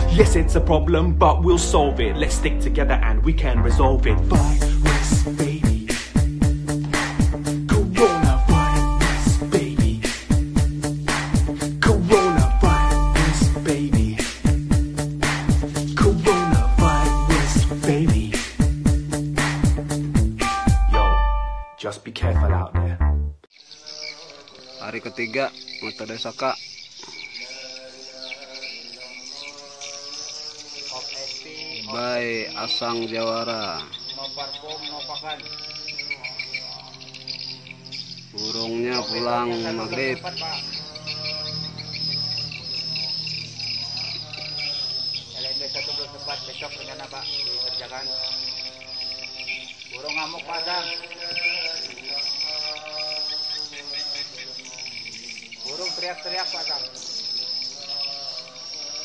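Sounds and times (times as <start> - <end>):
swiftlets trilling and chirping: 23.5 - 59.0.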